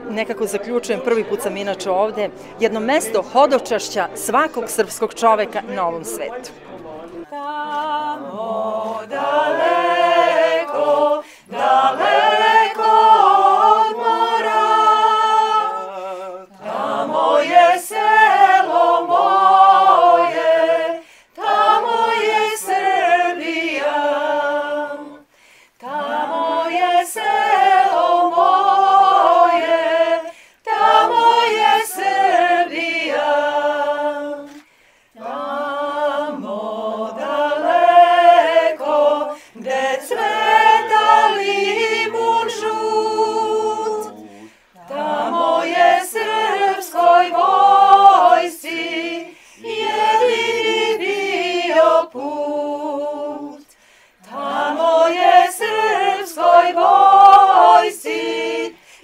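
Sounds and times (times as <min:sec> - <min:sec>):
women singing a cappella: 0:07.3 - 0:59.0.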